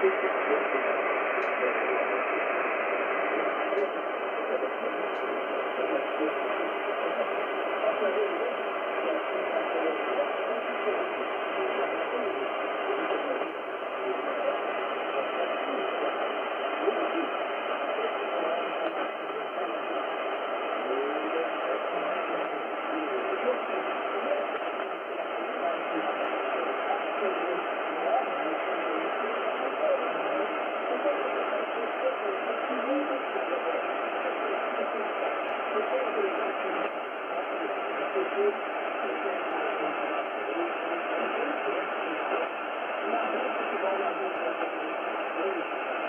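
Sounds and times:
faint radio voice: 0.0s - 46.0s
radio hiss and static: 0.0s - 46.0s.

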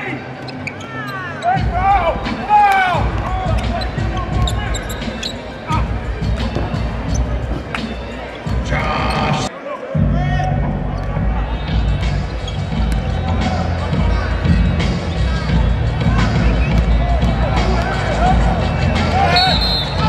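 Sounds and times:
sneakers squeaking: 0.0s - 9.5s, 10.9s - 20.0s
music with low beat: 1.6s - 20.0s.

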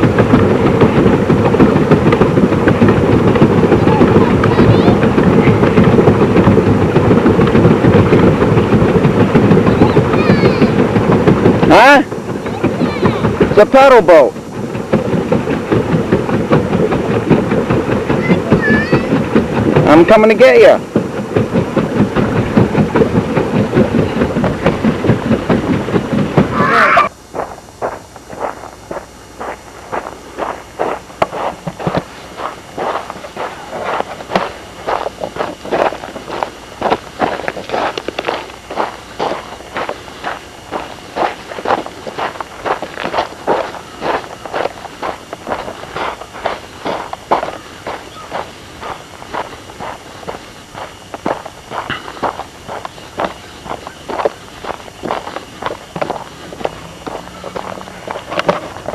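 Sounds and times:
loud rapid clatter: 0.0s - 26.8s
footsteps on gravel and grass: 18.2s - 58.9s.

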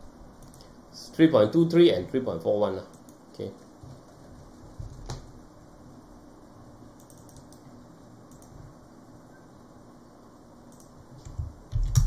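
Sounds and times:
computer mouse clicks: 0.4s - 0.7s, 2.9s - 3.2s, 7.0s - 7.7s, 8.3s - 8.6s, 10.7s - 12.0s.

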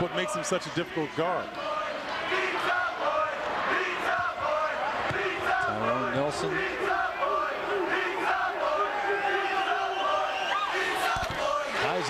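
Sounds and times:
crowd yelling and chanting: 0.0s - 12.0s.

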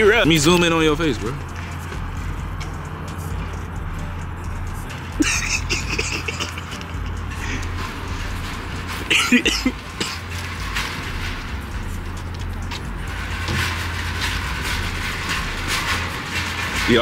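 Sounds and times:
outdoor background rumble and hiss: 0.0s - 17.0s
man laughing: 5.2s - 7.8s, 9.0s - 9.8s.

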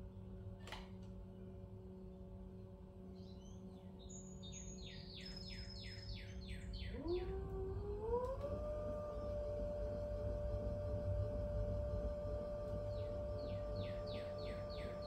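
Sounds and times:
pottery wheel motor humming: 1.2s - 15.0s.

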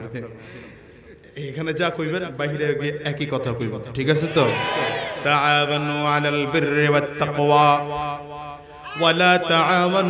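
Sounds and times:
man chanting through loudspeaker: 5.3s - 10.0s.

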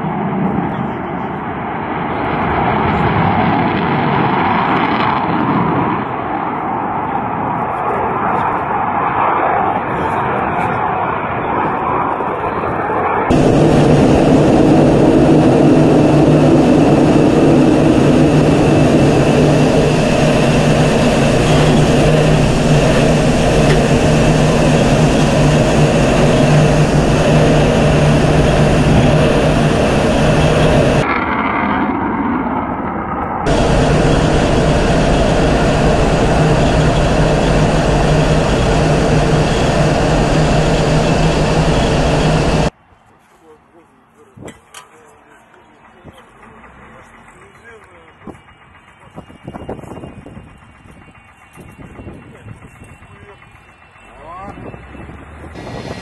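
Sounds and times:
jet engines in flight: 0.0s - 42.8s, 44.2s - 56.0s.

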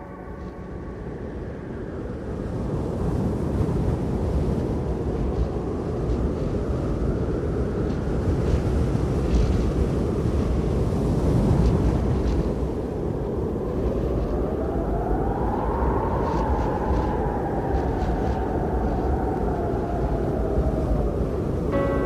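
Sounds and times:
rushing wind-like noise: 0.0s - 22.0s
steady low rumble: 0.0s - 22.0s.

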